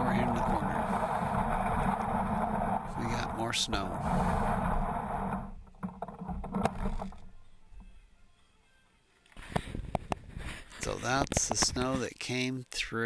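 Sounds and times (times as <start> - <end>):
plastic sled scraping concrete: 0.0 - 7.3.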